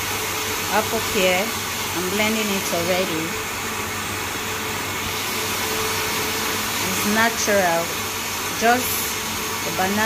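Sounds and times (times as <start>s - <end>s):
blender motor whirring: 0.0s - 10.0s.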